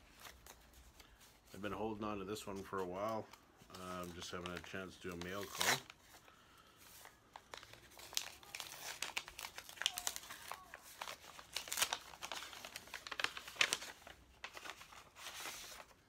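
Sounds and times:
paper crinkling: 0.0s - 16.0s
envelope tearing open: 3.7s - 6.1s, 7.3s - 16.0s.

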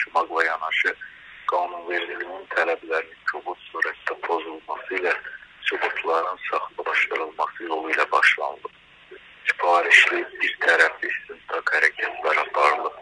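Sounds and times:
man talking over telephone: 0.0s - 8.8s, 9.5s - 13.0s.

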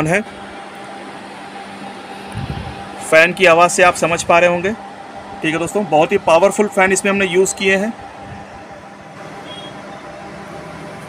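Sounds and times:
cooling fans blowing: 0.0s - 11.0s.

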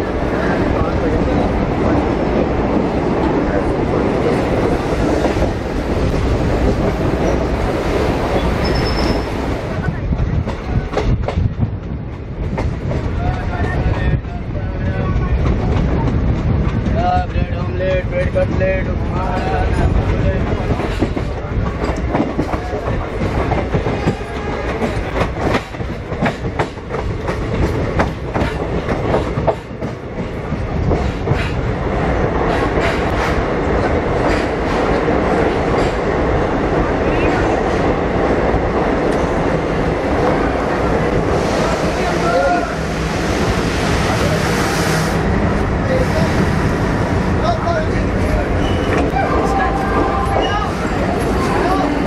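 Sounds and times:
train rolling rumble: 0.0s - 52.0s
train wheels clattering over rail joints: 10.0s - 14.2s, 15.1s - 36.3s.

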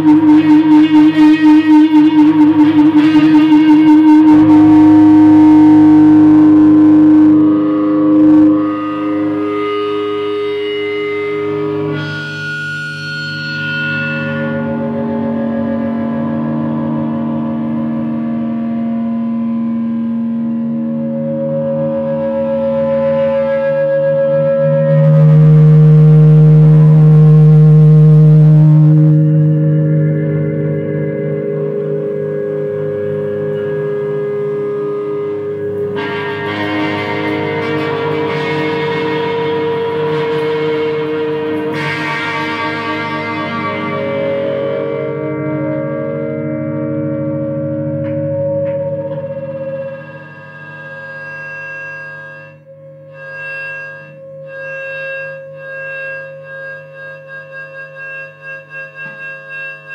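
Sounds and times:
electric guitar feedback drone: 0.0s - 59.9s.

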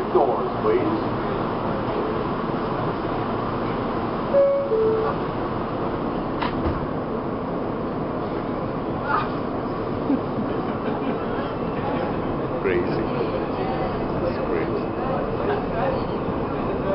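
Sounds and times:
subway car hum and rumble: 0.0s - 16.9s.

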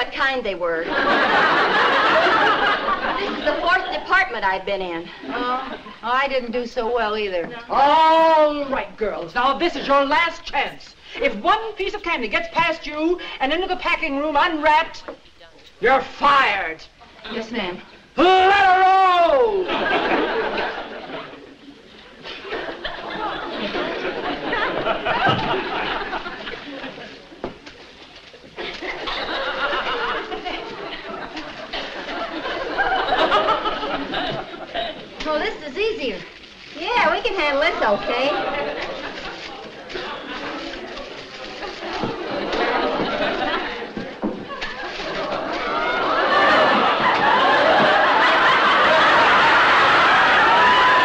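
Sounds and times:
murmur of audience: 0.7s - 6.5s, 14.9s - 51.0s
studio audience laughter: 0.8s - 4.1s, 19.6s - 21.5s, 22.2s - 27.2s, 28.6s - 35.1s, 41.6s - 51.0s.

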